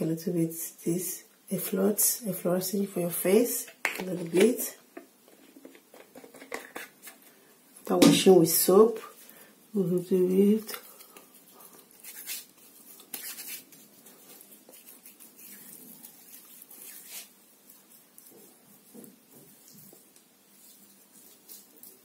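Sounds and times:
fingers rubbing lathered face: 0:10.6 - 0:22.0.

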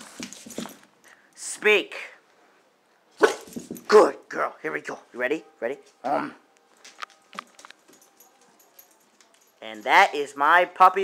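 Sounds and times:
dog barking: 0:03.2 - 0:03.6.

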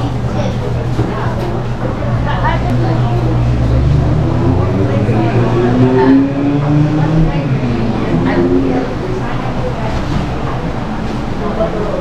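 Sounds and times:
indistinct voices talking: 0:00.0 - 0:12.0
steady low hum: 0:00.0 - 0:12.0.

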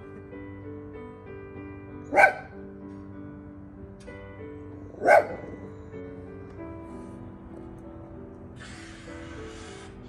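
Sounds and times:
dog barking: 0:02.1 - 0:02.6, 0:04.9 - 0:05.7.

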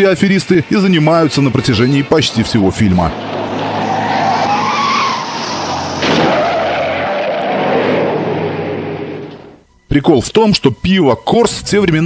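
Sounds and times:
road and engine noise: 0:00.0 - 0:09.7
car tires squealing: 0:02.2 - 0:09.6.

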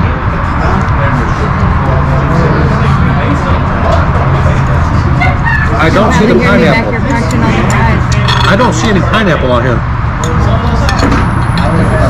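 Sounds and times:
overlapping diners chatter: 0:00.0 - 0:12.0.

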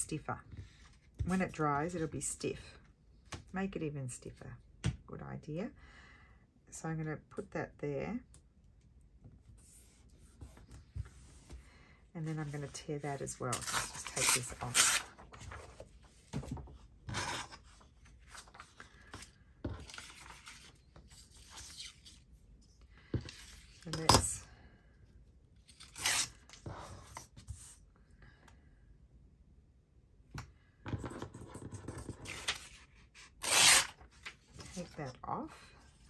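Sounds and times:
paper tearing: 0:13.6 - 0:15.3, 0:25.7 - 0:26.5, 0:33.3 - 0:34.2.

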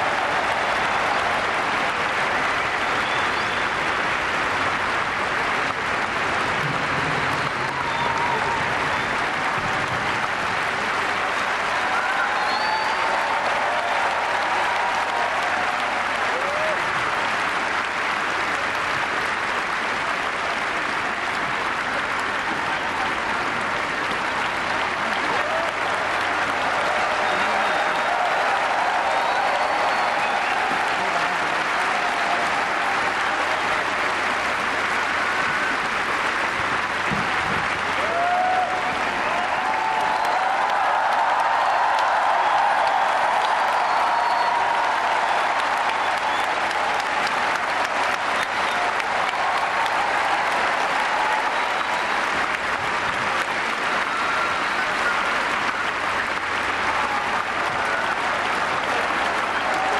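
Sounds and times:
crowd shouts: 0:00.0 - 0:03.4, 0:07.4 - 0:09.8, 0:11.1 - 0:17.2, 0:25.0 - 0:34.3, 0:37.9 - 0:59.9
audience applauding: 0:00.0 - 0:59.9.

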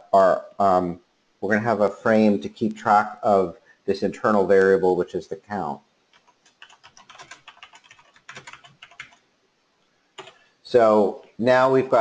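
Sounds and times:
typing on a keyboard: 0:06.1 - 0:09.2, 0:10.2 - 0:10.4.

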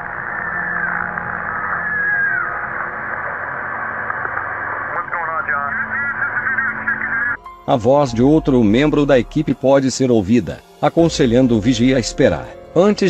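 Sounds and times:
wavering cries: 0:00.0 - 0:02.9.

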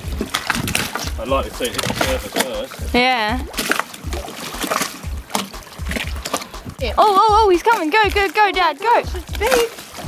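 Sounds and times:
wind buffeting microphone: 0:00.0 - 0:04.3
water lapping against boat hull: 0:00.0 - 0:10.0.

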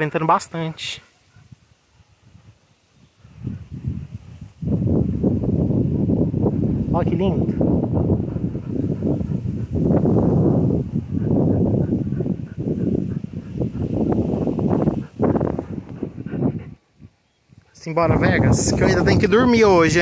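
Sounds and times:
wind buffeting microphone: 0:01.2 - 0:20.0.

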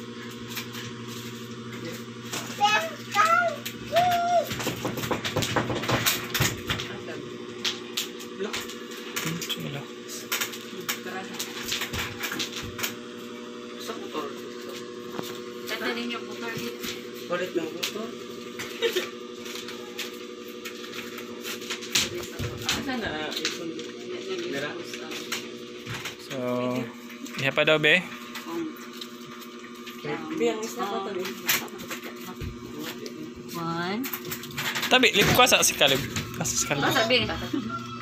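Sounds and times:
steady background hum: 0:00.0 - 0:38.0.

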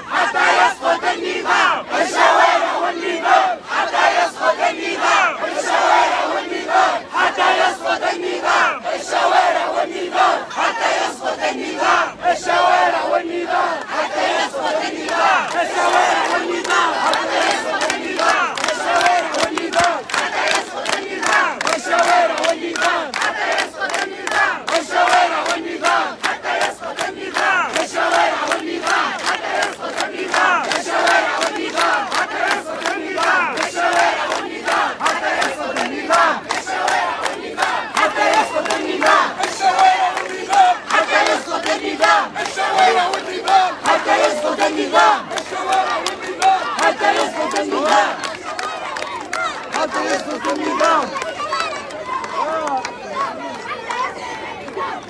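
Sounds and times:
crowd shouting slogans: 0:00.0 - 0:55.0
crowd clapping: 0:11.8 - 0:55.0.

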